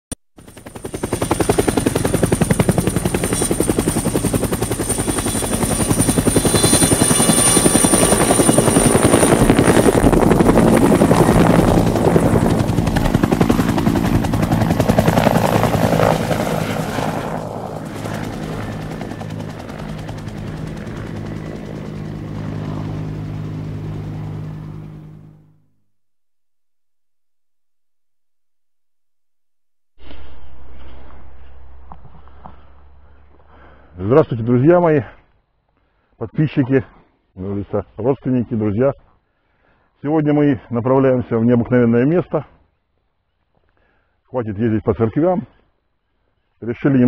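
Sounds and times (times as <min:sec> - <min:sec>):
helicopter rotor chop: 0:00.4 - 0:25.4
turbine whine: 0:30.0 - 0:33.9.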